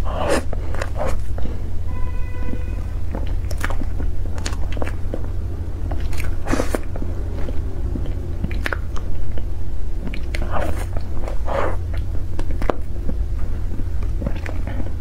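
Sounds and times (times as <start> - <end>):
wet chewing: 0.0 - 1.8, 2.5 - 15.0
steady low hum: 0.0 - 15.0.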